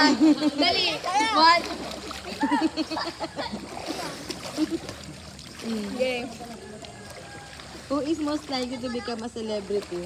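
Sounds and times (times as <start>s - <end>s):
children's voices: 0.0s - 2.8s, 8.0s - 9.7s
pool water splashing: 0.0s - 10.0s.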